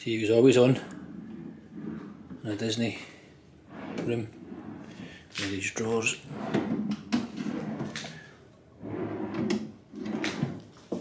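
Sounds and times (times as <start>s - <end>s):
wooden drawers sliding on runners: 0.5s - 11.0s.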